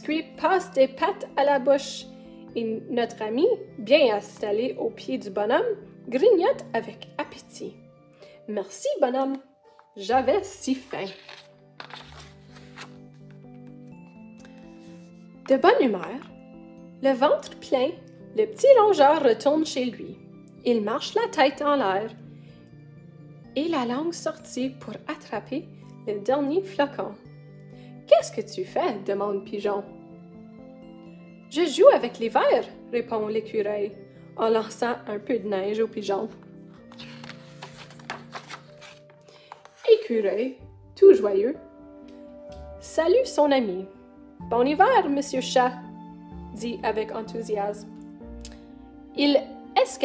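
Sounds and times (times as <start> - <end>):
soft background music: 0.0 - 50.0
woman reading aloud: 8.5 - 11.4, 39.8 - 41.6
paper page turning: 10.7 - 15.1, 36.7 - 40.2.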